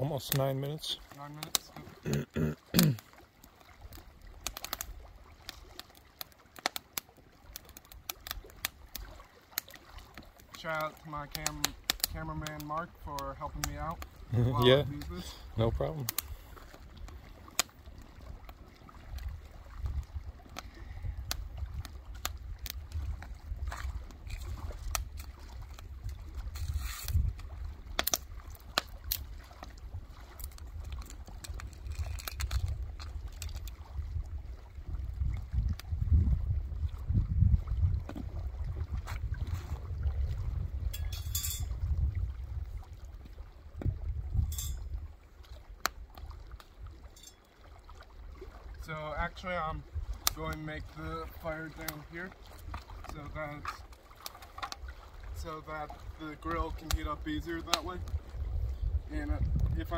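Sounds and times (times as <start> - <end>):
wind rumble on microphone: 17.9 - 47.1, 48.2 - 53.8, 54.6 - 59.9
twigs and kindling clicking: 23.7 - 33.8.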